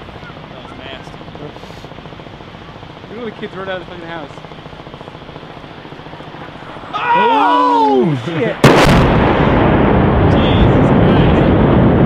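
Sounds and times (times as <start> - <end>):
outdoor background noise: 0.0 - 12.0
steady low hum: 0.0 - 12.0.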